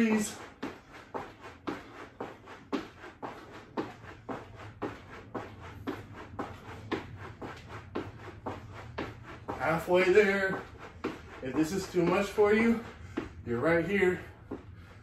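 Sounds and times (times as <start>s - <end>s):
sneakers thudding on rubber mat: 0.0s - 14.8s.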